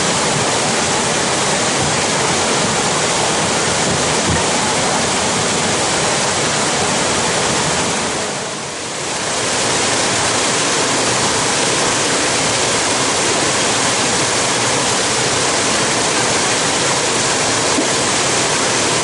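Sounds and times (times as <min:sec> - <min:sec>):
waterfall and creek rushing: 0:00.0 - 0:19.0.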